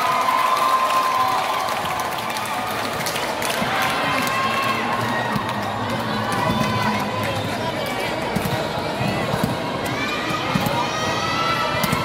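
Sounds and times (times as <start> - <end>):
crowd cheering and shouting: 0.0 - 12.0.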